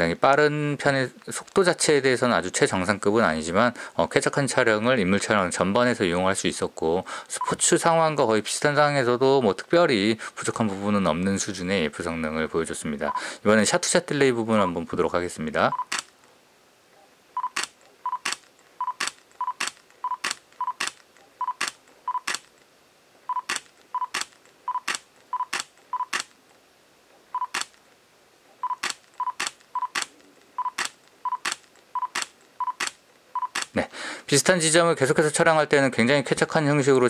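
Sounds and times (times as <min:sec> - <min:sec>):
camera focus beep: 0:15.7 - 0:16.1, 0:17.4 - 0:22.4, 0:23.3 - 0:26.3, 0:27.3 - 0:27.7, 0:28.6 - 0:33.7
camera shutter click: 0:15.9 - 0:16.1, 0:17.5 - 0:18.4, 0:19.0 - 0:22.5, 0:23.4 - 0:26.3, 0:27.4 - 0:27.7, 0:28.8 - 0:33.7.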